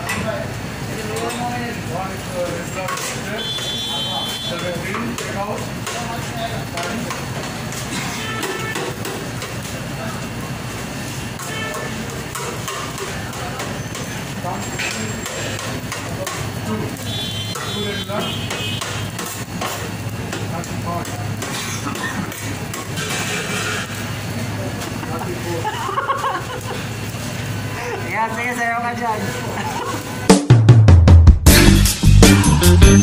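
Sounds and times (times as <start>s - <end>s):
hubbub of voices: 0.0s - 30.3s
serving scoop scraping metal tray: 22.8s - 24.1s
background music: 30.3s - 33.0s.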